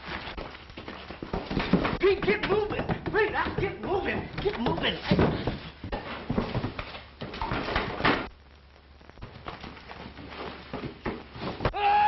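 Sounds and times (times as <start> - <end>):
knocks thumps and clatter: 1.2 - 8.3.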